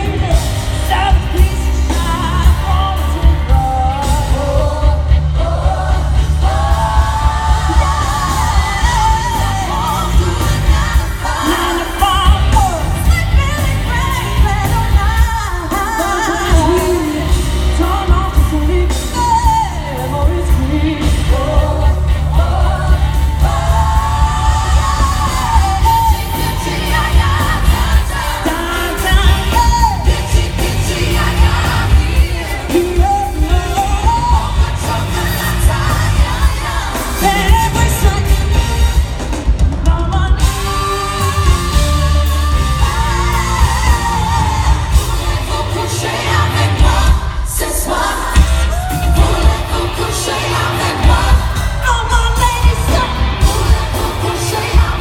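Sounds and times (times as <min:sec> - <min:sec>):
woman singing into microphone: 0:00.0 - 0:38.6
live pop band playing: 0:00.0 - 0:55.0.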